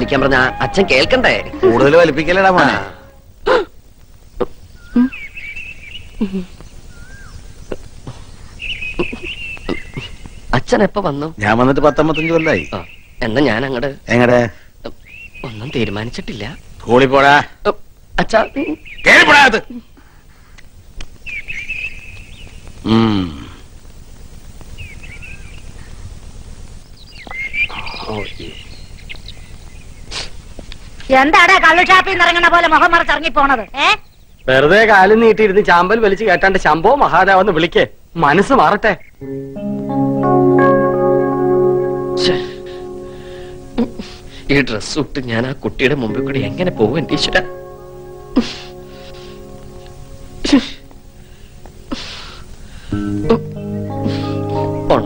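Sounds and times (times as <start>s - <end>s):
birds chirping: 0.0s - 17.2s, 18.2s - 19.7s, 20.3s - 22.8s, 24.7s - 31.0s, 31.6s - 55.0s.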